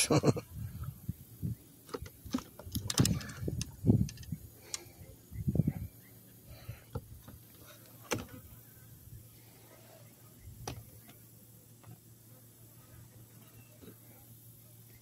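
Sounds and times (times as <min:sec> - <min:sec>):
sharp clicks and rattles: 0:01.9 - 0:04.9.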